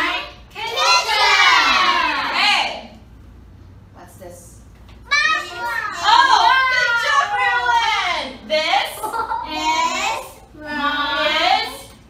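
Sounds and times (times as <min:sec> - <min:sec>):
children calling out: 0:05.1 - 0:08.0.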